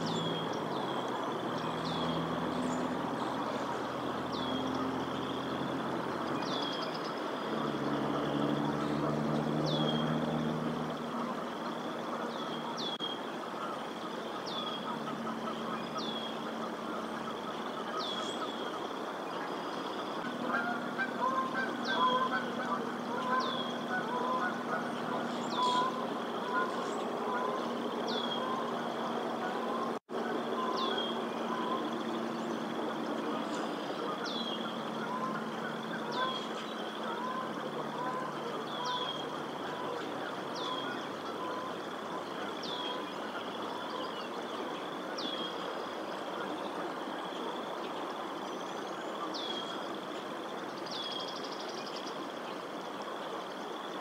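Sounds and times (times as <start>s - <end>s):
low engine hum: 0.0s - 50.8s
geese honking: 13.6s - 18.8s, 20.1s - 45.2s
small bird calling: 19.6s - 45.7s.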